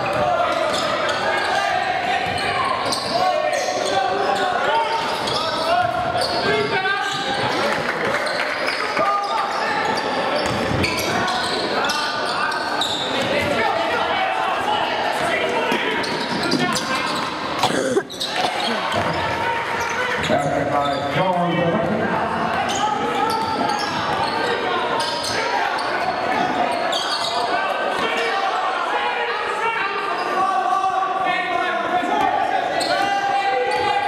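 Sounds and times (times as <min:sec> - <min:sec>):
voices echoing in a gym: 0:00.0 - 0:34.0.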